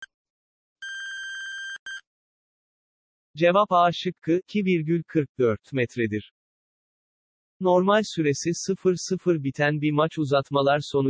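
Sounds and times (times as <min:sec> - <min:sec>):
electronic timer beeps: 0:00.8 - 0:02.0.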